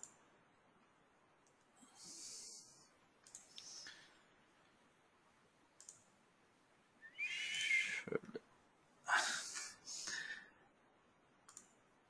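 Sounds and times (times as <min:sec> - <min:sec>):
computer mouse clicks: 0:00.0 - 0:00.2, 0:03.2 - 0:04.0, 0:05.8 - 0:06.1, 0:11.4 - 0:11.8.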